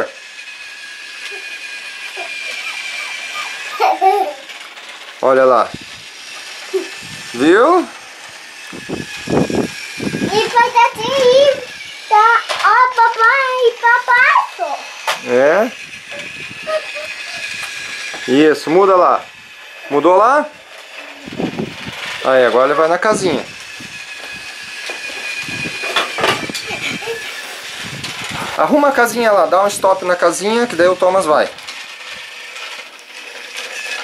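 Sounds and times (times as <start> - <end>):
toy train motor whirring: 0.0 - 34.0.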